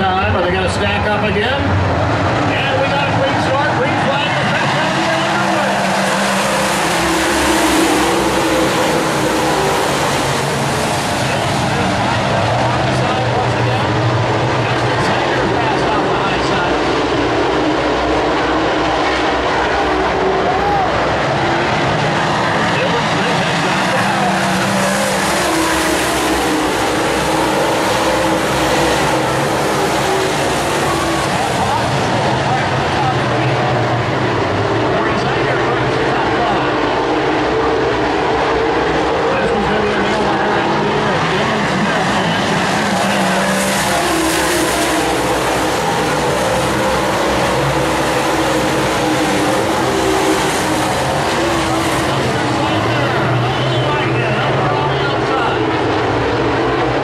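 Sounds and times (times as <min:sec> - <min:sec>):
race car engines roaring: 0:00.0 - 0:57.0.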